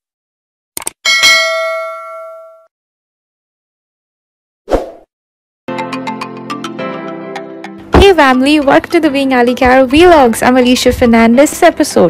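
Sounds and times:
notification bell ding: 1.1 - 2.7.

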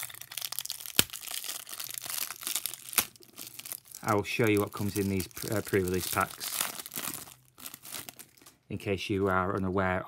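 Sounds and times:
plastic wrapping crinkling: 0.0 - 9.8.

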